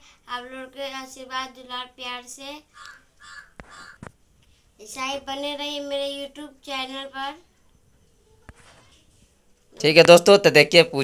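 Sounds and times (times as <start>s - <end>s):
bird cawing faintly: 2.7s - 4.1s.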